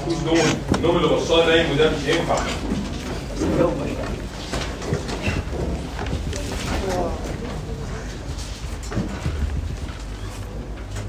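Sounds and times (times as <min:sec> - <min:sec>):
indistinct voices: 0:00.0 - 0:09.4
low room hum: 0:00.0 - 0:11.0.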